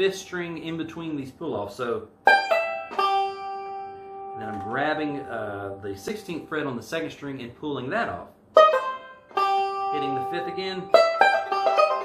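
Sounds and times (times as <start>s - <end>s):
banjo played slowly: 2.1s - 6.9s, 8.4s - 12.0s.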